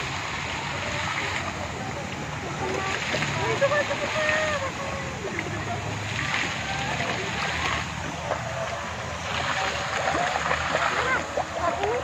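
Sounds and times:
faint voices: 0.0 - 12.0
water splashing and churning: 0.0 - 12.0.

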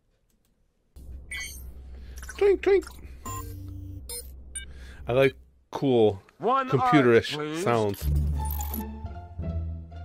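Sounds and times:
high electronic bleeps: 1.3 - 1.7, 2.8 - 4.7.

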